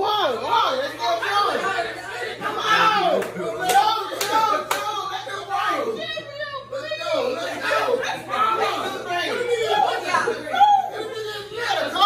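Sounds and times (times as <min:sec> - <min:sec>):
sharp hand claps: 0:03.2 - 0:04.9.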